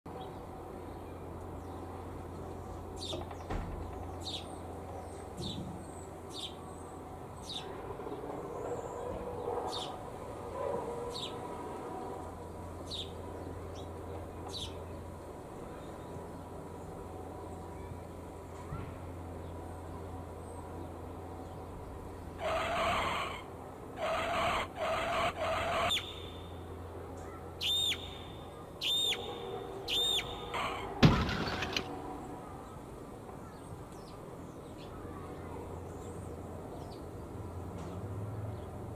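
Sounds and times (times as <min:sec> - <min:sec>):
sparrows chirping: 0:00.2 - 0:03.5, 0:04.2 - 0:07.8, 0:12.4 - 0:18.0, 0:24.9 - 0:31.7.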